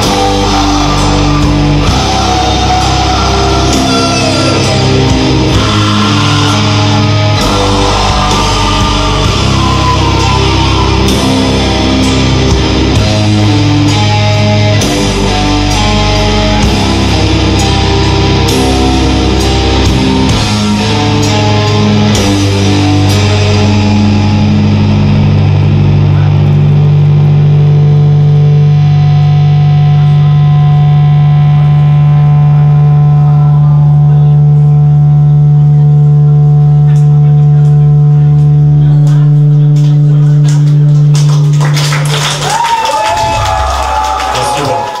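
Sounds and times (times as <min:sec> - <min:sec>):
crowd shouting and cheering: 0:00.0 - 0:45.0
distorted electric guitars sustained chord: 0:00.0 - 0:45.0.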